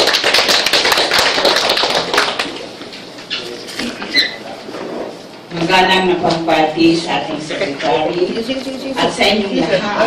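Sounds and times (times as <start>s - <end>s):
audience applauding: 0.0s - 2.7s.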